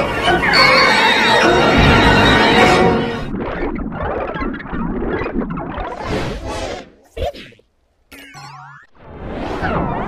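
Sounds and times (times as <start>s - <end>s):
music: 0.0s - 3.3s.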